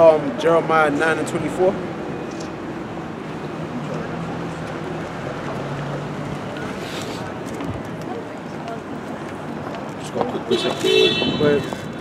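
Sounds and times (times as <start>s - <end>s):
wind rushing on microphone: 10.9s - 12.0s.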